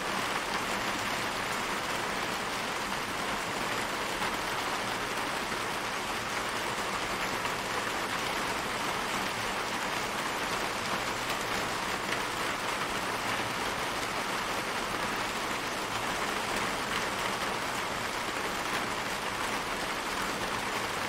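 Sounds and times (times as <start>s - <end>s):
rain on brick paving: 0.0s - 21.0s.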